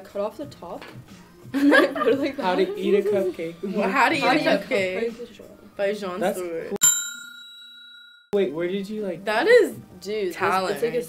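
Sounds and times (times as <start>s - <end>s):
bright bell-like ding: 6.8s - 8.4s.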